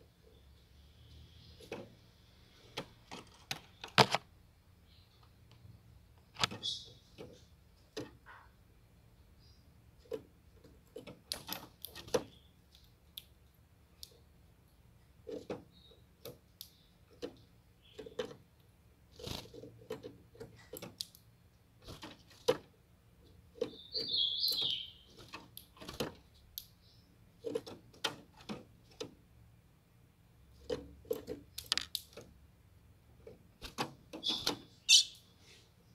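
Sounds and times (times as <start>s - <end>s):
short high bird call: 34.9s - 35.2s.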